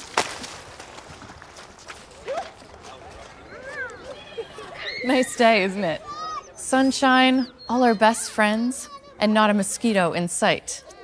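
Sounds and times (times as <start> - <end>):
body slapping wet slide: 0.0 - 4.2.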